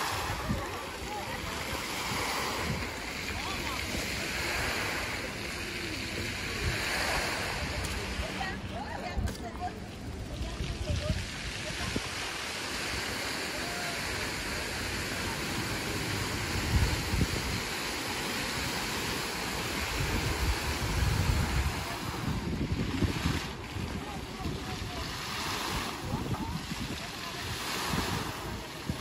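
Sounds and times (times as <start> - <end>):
fountain jets splashing into pool: 0.0 - 29.0
wind rumbling on microphone: 0.0 - 29.0.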